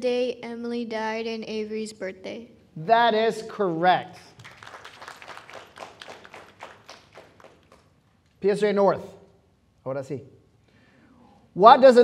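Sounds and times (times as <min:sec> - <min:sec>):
small group applauding: 0:04.3 - 0:08.1.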